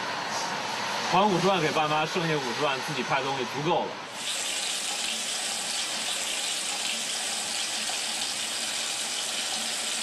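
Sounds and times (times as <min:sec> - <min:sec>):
water running from a tap: 0:04.2 - 0:10.0.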